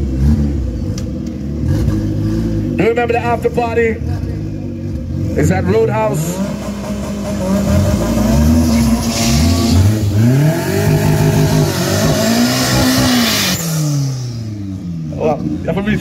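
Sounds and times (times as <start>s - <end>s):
drag cars accelerating hard: 4.9s - 16.0s.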